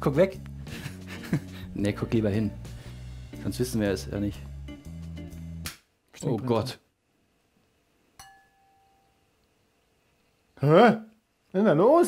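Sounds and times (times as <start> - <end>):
ceramic bowl struck with metal: 8.2 - 9.1.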